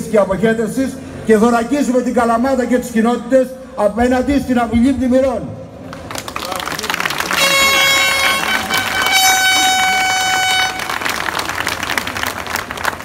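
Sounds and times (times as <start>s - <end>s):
crowd applauding: 5.8s - 13.0s
horn blasts: 7.2s - 11.3s.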